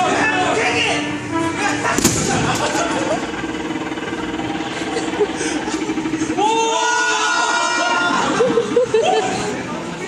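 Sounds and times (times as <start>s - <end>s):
pulsing electronic buzz: 0.9s - 8.9s.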